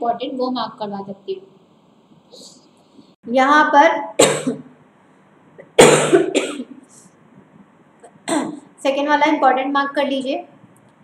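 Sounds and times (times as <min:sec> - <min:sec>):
woman coughing: 0:04.2 - 0:04.7, 0:05.6 - 0:06.8, 0:08.1 - 0:08.7.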